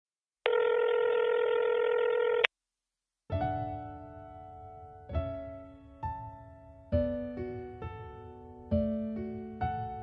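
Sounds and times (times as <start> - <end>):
telephone ringback tone: 0.4 - 2.5
soft piano chord: 3.3 - 10.0.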